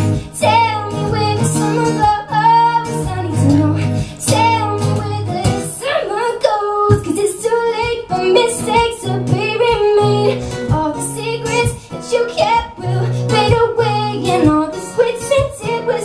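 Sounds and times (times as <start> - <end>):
strummed guitar chords: 0.0 - 16.0
woman singing: 0.0 - 16.0.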